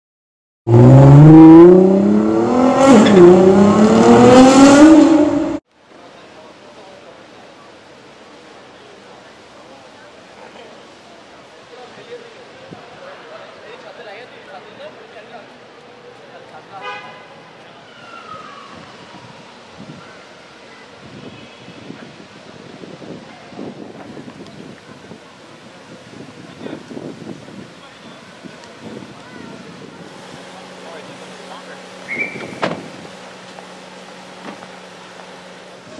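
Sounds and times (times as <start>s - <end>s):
car engine accelerating hard: 0.7s - 5.6s
people's voices: 5.9s - 33.7s.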